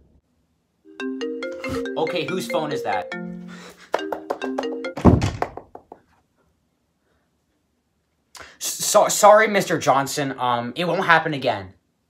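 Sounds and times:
phone ringtone melody: 0.9s - 5.2s
heavy thump: 5.0s - 5.8s.

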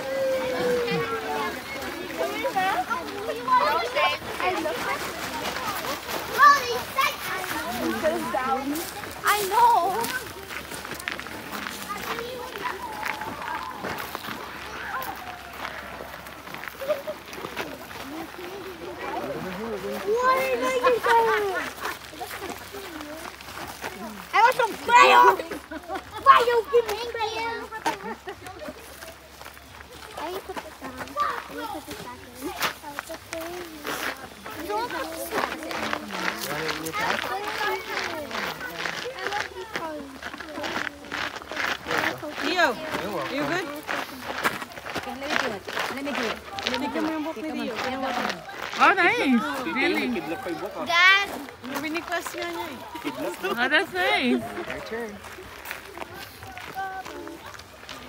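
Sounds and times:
background chatter of people: 0.0s - 58.0s
children talking: 0.0s - 58.0s
footsteps on leafy dirt trail: 0.0s - 58.0s.

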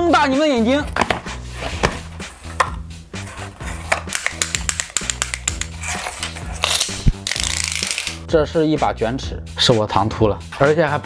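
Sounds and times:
tape measure blade ratcheting: 4.1s - 8.2s.

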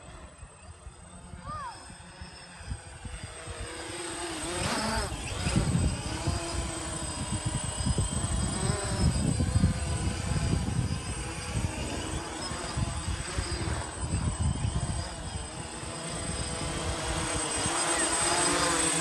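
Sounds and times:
drone propellers buzzing: 0.0s - 19.0s
wind rumbling on microphone: 0.1s - 19.0s.

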